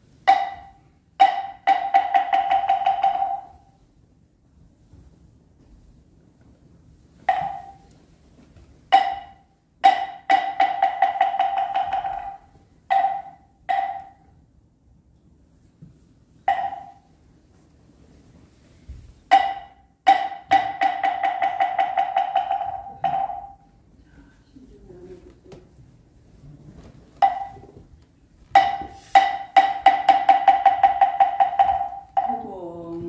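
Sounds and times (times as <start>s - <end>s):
hollow wooden knocks: 0.2s - 3.8s, 7.1s - 14.3s, 15.8s - 17.1s, 18.9s - 23.8s, 27.1s - 33.0s.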